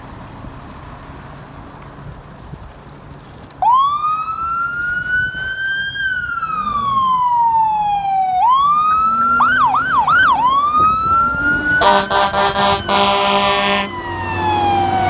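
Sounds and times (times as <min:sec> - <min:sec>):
fire truck siren wailing and yelping: 0:03.5 - 0:15.0.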